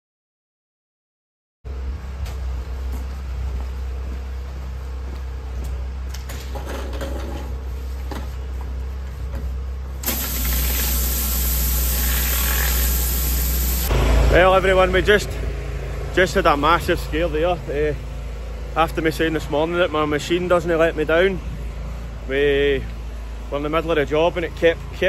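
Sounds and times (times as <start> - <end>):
high-pressure water spray hiss: 10.0 - 13.9
pressure washer engine drone: 10.0 - 25.0.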